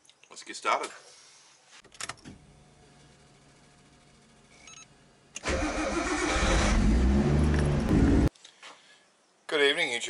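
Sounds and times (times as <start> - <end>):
faint steady hum: 1.1 - 5.5.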